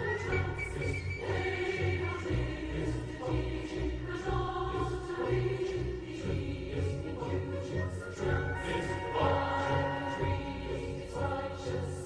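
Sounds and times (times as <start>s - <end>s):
choir singing held chords: 0.0s - 12.0s.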